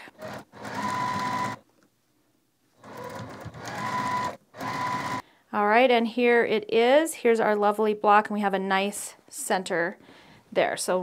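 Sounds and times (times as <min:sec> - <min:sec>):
sewing machine stitching: 0:00.1 - 0:01.6, 0:02.8 - 0:05.2.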